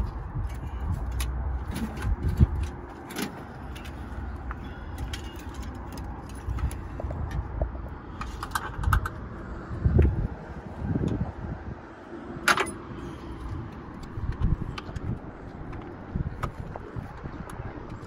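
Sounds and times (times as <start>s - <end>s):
low rumbling bumps: 0.0s - 11.8s
metal car parts clinking: 0.4s - 7.0s, 12.4s - 13.3s.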